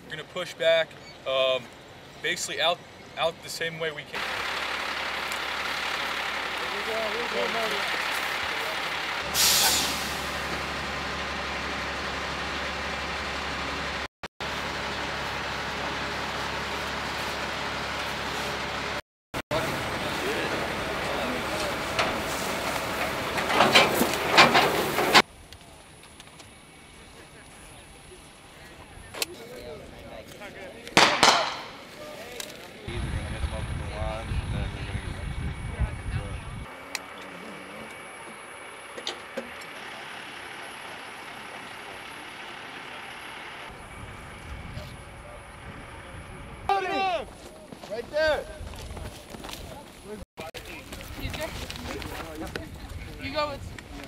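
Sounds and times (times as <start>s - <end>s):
outdoor ambience: 0.0s - 54.0s
truck engines running: 0.0s - 54.0s
air brake hiss: 9.2s - 10.3s.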